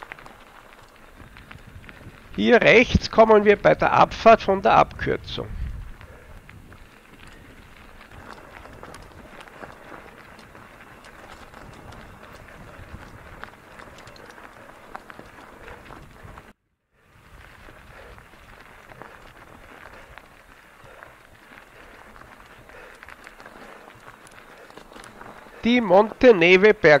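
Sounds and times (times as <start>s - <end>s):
bike tyres rolling over gravel: 0.0s - 27.0s.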